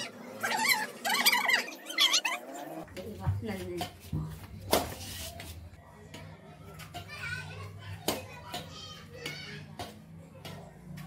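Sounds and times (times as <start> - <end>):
children chattering and calling: 5.8 - 11.0.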